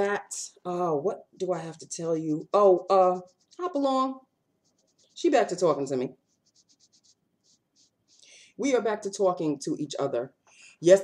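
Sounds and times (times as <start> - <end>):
woman speaking: 0.0 - 4.2, 5.2 - 6.2
faint short scratching: 3.0 - 3.9, 4.6 - 8.2.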